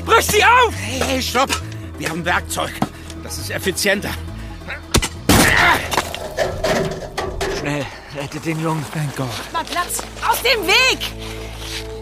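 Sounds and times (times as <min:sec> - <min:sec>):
lid creaking: 0:05.8 - 0:07.8.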